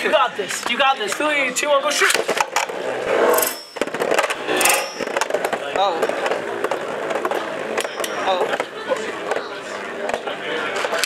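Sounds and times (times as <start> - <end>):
spinning tops scraping plastic floor: 2.3 - 8.2
spinning tops clacking together: 3.2 - 5.6.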